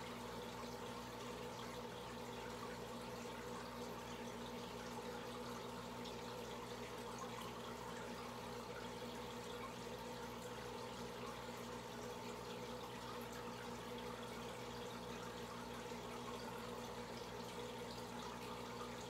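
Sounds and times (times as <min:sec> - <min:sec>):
aquarium filter bubbling: 0:00.0 - 0:19.0.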